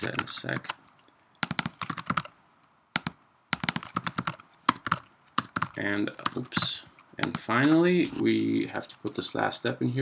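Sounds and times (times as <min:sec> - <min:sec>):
typing on computer keyboard: 0:00.0 - 0:00.8, 0:01.4 - 0:02.3, 0:03.0 - 0:07.8.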